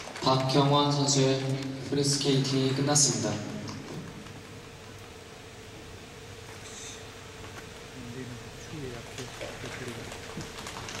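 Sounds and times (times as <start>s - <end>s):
scattered hand clapping: 0.0s - 1.7s, 9.1s - 11.0s.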